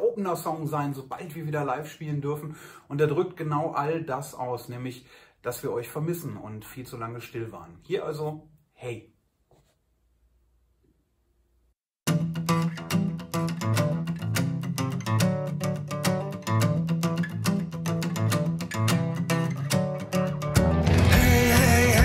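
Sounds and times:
pop-rock guitar: 0:12.1 - 0:22.0.

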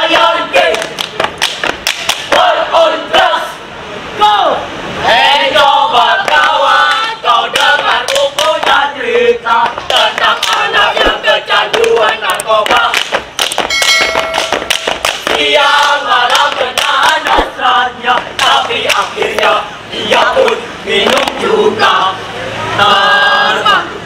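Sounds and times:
group chanting and singing: 0:00.0 - 0:13.7, 0:14.3 - 0:24.0
sharp percussive hits: 0:13.4 - 0:15.5
held steady tone: 0:13.7 - 0:14.9.

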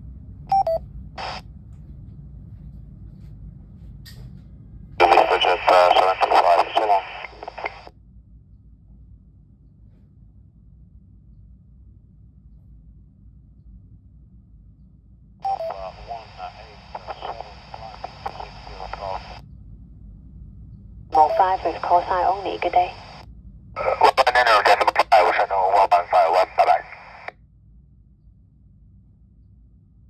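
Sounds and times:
low hum: 0:00.0 - 0:30.0
radio voice transmission: 0:05.0 - 0:07.9, 0:15.5 - 0:19.4, 0:21.2 - 0:23.2, 0:23.8 - 0:27.3.

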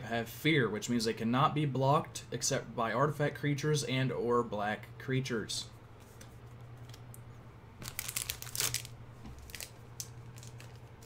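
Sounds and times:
paper rustling and crinkling: 0:07.8 - 0:11.0.

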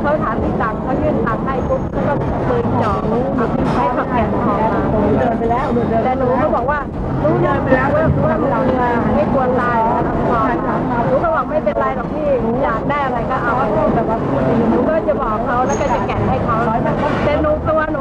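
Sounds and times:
low background noise: 0:00.0 - 0:18.0
woman speaking: 0:00.0 - 0:18.0.

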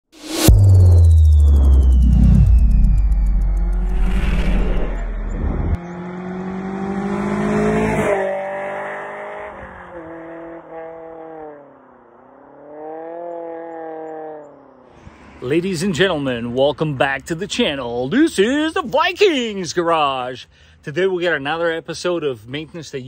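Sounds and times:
deep boom: 0:00.2 - 0:05.8
sliding pitched tones: 0:00.2 - 0:05.8.

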